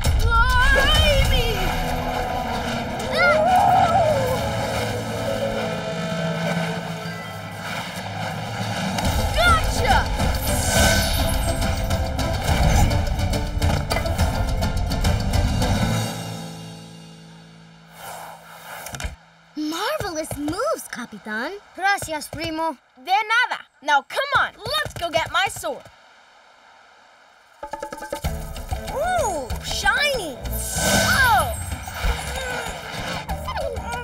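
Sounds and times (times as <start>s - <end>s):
cartoon background music: 0.0s - 7.8s, 9.1s - 17.0s, 27.7s - 34.0s
magic whooshing effects: 4.2s - 13.7s, 30.5s - 33.2s.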